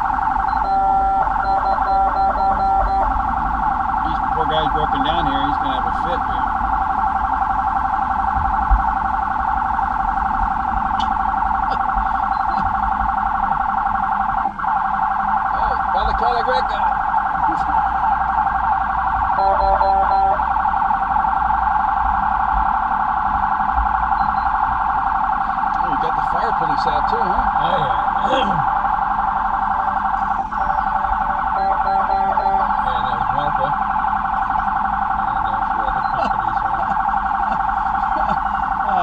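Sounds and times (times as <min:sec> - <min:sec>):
police siren warbling: 0:00.0 - 0:39.0.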